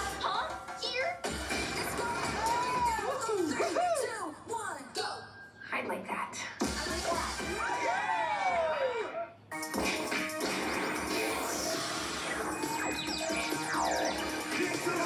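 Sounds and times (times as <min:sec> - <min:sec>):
music with crashing sound effects: 0:09.5 - 0:15.0.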